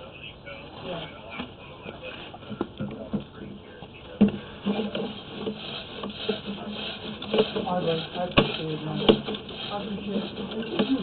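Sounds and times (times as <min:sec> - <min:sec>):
cable rubbing and scraping: 0:04.6 - 0:11.0.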